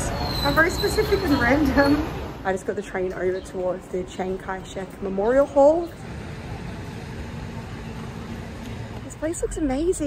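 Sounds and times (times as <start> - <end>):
distant road traffic hum: 0.0 - 10.0.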